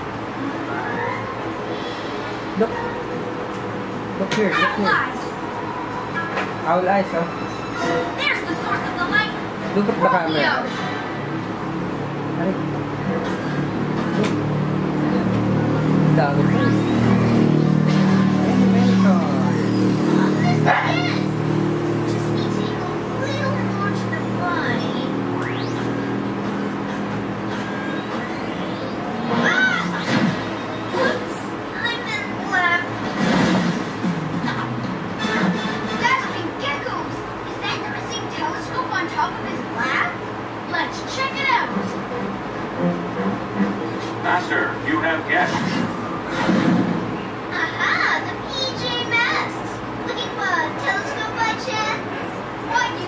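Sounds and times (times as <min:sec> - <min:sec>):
steady low hum: 0:00.0 - 0:53.0
higher-pitched voices: 0:28.0 - 0:33.1
cartoon character voice: 0:28.7 - 0:30.1
background music: 0:41.6 - 0:44.7.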